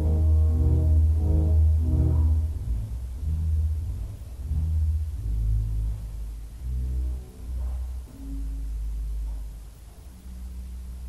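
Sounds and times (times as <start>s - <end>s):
pipe organ deep low notes: 0.0s - 11.0s.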